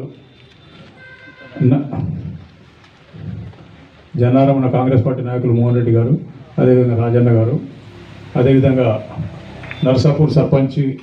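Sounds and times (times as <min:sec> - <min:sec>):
man speaking: 0:08.4 - 0:11.0.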